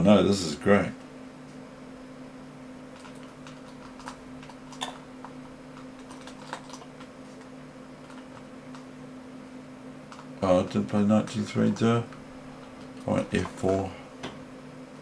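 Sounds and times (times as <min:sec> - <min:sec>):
low electrical hum: 0:00.0 - 0:15.0
computer keys clicking: 0:03.0 - 0:04.8.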